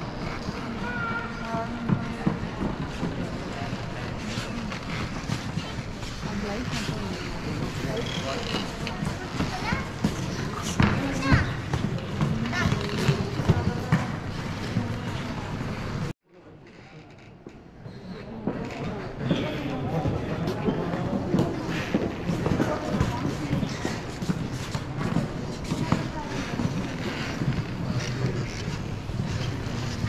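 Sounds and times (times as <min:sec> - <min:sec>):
crowd chattering in echoing hall: 0:00.0 - 0:30.0.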